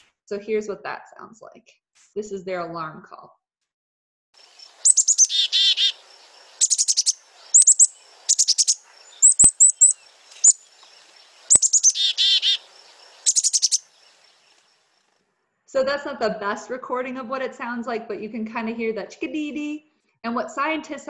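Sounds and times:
chickadee alarm call: 0:04.4 - 0:14.5.

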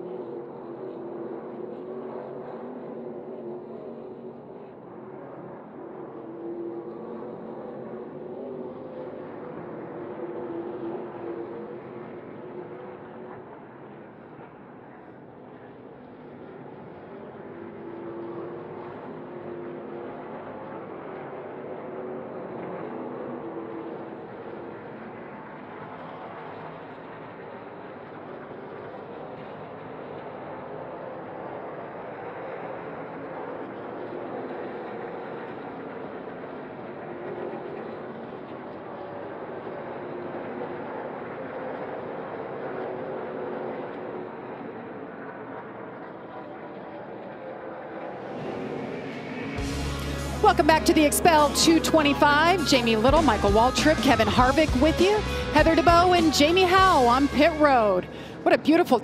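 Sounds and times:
race truck engines droning: 0:48.2 - 0:59.0.

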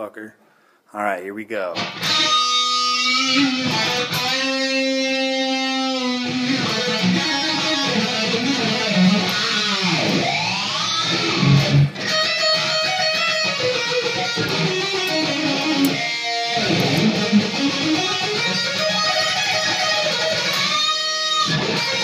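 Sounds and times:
solo electric guitar: 0:01.8 - 0:22.0.

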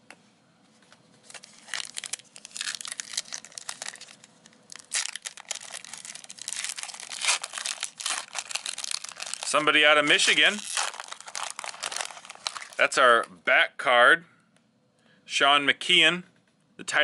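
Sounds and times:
plastic wrapper crackling and tearing: 0:01.2 - 0:13.3.

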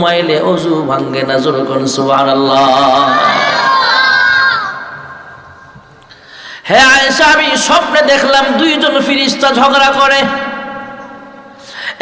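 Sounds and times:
crowd calling out together: 0:02.8 - 0:05.5.

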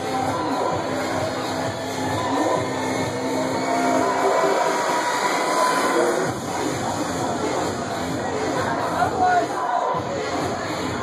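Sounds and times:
club dance music: 0:00.0 - 0:11.0.

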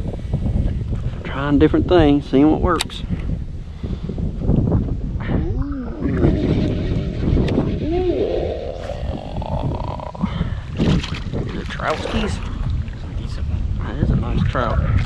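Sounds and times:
wind buffeting microphone: 0:00.0 - 0:15.0
short wordless vocal sounds: 0:07.8 - 0:10.7.

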